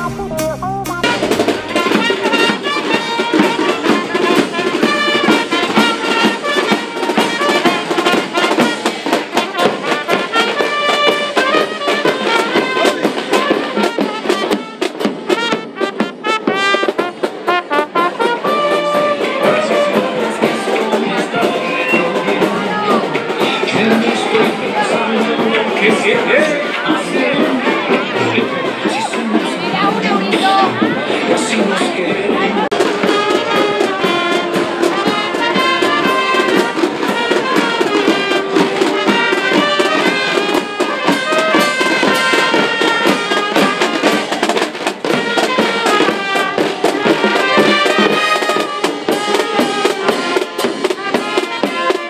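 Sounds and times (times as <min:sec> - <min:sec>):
bass drum steady beat: 0:00.0 - 0:08.8
snare drums: 0:00.0 - 0:52.0
trumpets and trombones: 0:00.0 - 0:52.0.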